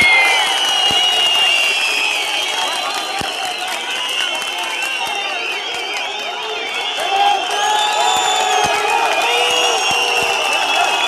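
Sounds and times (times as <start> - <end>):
large crowd shouting and cheering: 0.0 - 11.0.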